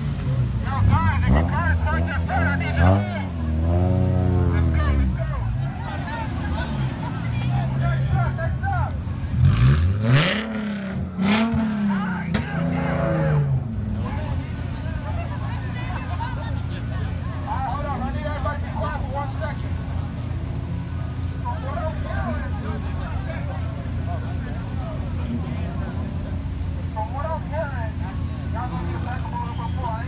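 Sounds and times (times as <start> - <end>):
crowd chatter: 0.0 - 30.0
engines idling: 0.0 - 30.0
car engine revving on limiter: 0.7 - 5.1, 9.3 - 14.0.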